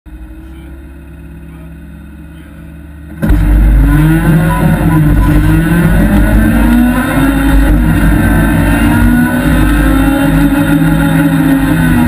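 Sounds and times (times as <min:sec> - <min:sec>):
rally car engine accelerating: 0:00.1 - 0:12.0.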